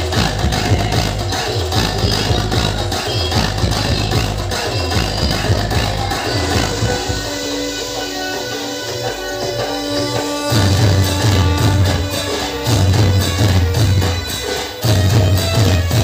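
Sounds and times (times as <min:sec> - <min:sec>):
electronic dance music with pounding bass: 0:00.0 - 0:16.0.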